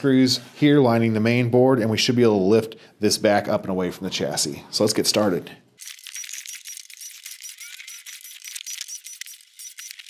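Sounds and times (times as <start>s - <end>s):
cordless drill clicking and rattling: 5.8s - 10.0s.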